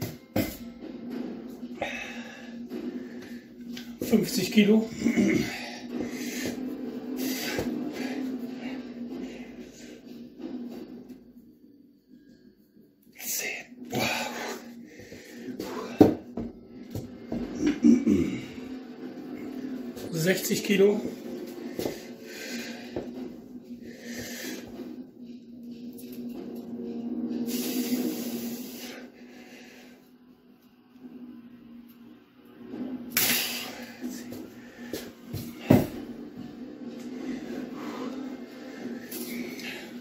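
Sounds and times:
man breathing forcefully: 1.7s - 3.8s, 5.2s - 10.1s, 13.9s - 17.5s, 21.6s - 25.0s, 33.2s - 36.2s.

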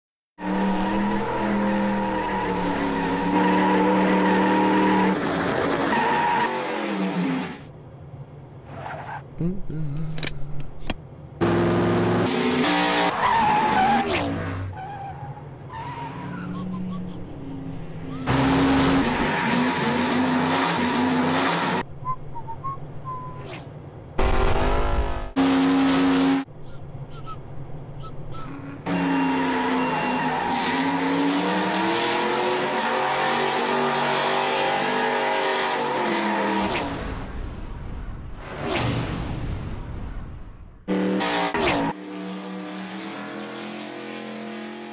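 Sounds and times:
race car engine: 0.4s - 37.4s, 40.8s - 44.9s
tyres squealing: 26.6s - 36.6s.

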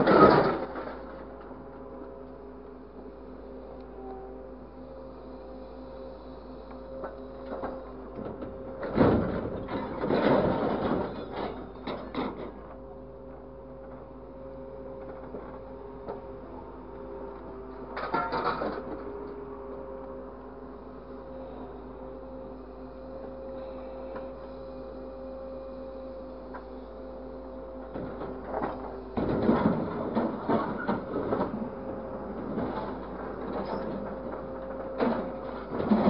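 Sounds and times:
hydraulic machine hum and whine: 0.0s - 36.0s.

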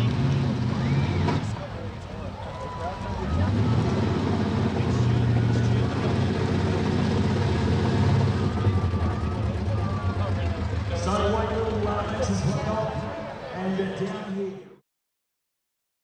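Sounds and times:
car engine at high revs: 0.0s - 1.8s, 3.0s - 12.7s.

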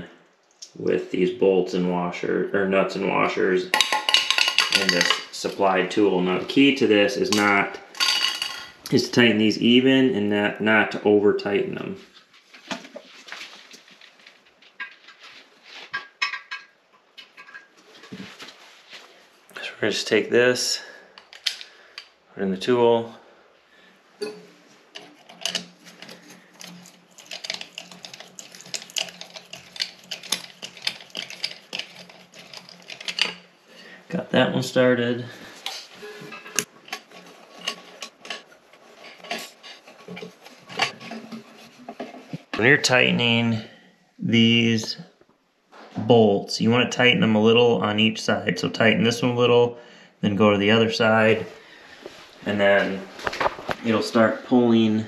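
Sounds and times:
metal bolts and porcelain clinking: 3.7s - 5.4s, 7.3s - 8.8s, 24.2s - 33.5s.

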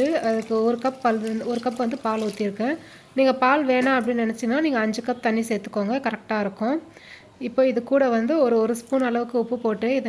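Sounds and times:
woman speaking: 0.0s - 6.8s.

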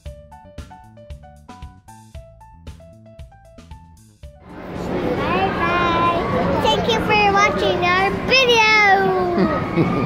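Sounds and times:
children shouting and squealing: 5.1s - 10.0s.

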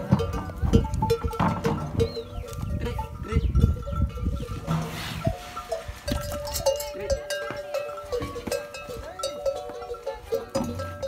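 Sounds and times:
held ringing tones: 5.3s - 11.0s.

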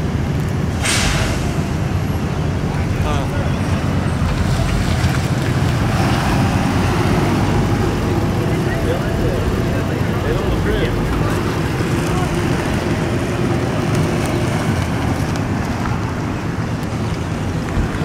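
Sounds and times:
vehicle engines driving past: 0.0s - 18.0s.

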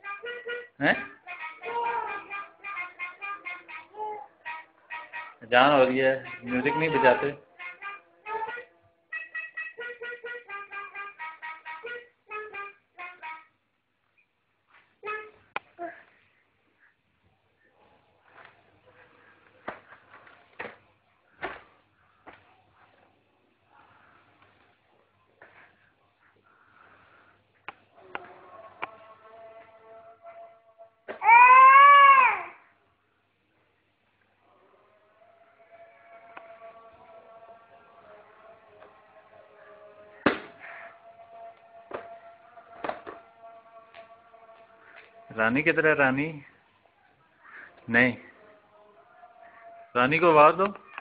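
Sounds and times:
toy instrument notes: 0.0s - 5.4s, 6.2s - 13.5s
toddler squealing: 31.2s - 32.6s.

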